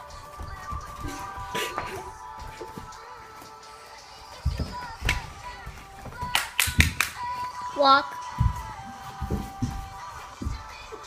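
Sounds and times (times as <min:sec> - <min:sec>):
background music: 0:00.0 - 0:11.0
bodies landing on gym mat: 0:04.3 - 0:07.6, 0:08.3 - 0:11.0.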